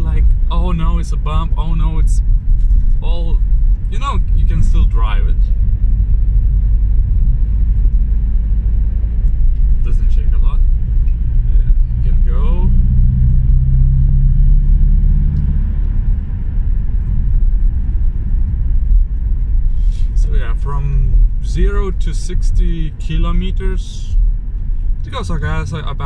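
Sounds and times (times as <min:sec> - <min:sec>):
road and engine rumble in car: 0:00.0 - 0:26.0
steady engine drone: 0:00.0 - 0:26.0.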